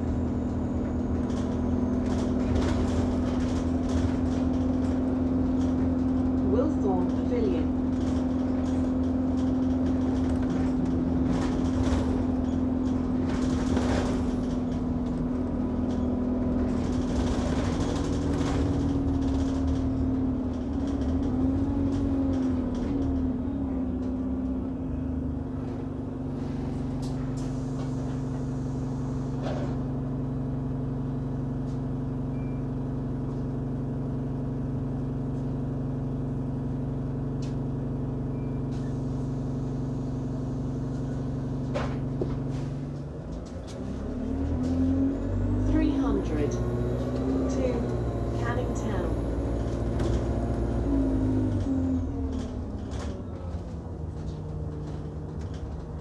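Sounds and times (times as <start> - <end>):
bus engine hum: 0.0 - 56.0.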